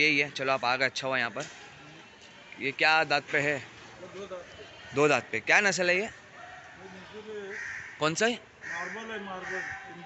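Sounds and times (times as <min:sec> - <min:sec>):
harsh rasping animal calls: 0:07.5 - 0:09.9.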